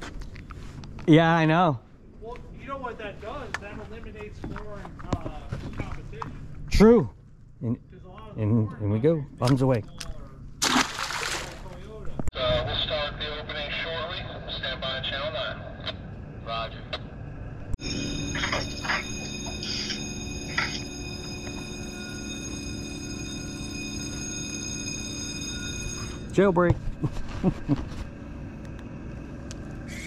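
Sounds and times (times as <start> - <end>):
steady multi-pitched hum: 0.0 - 30.0
fish splashing into water: 10.6 - 11.7
indistinct voices talking: 17.8 - 24.3.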